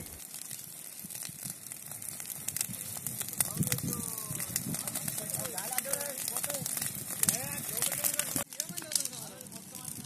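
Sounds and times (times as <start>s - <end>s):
dry grass burning and crackling: 0.0s - 10.0s.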